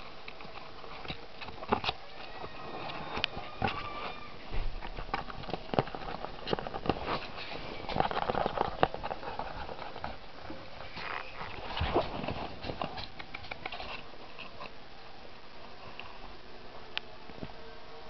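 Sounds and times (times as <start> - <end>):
claws scratching on cardboard: 0.3 - 14.8.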